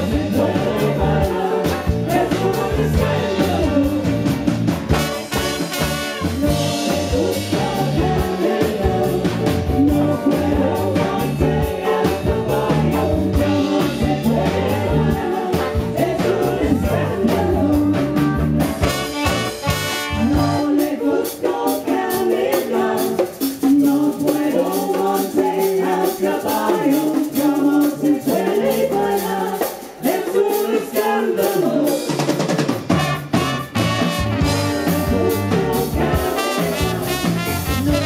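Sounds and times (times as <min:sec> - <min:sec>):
man singing: 0:00.0 - 0:04.4, 0:06.2 - 0:19.0, 0:34.7 - 0:38.0
live band playing: 0:00.0 - 0:38.0.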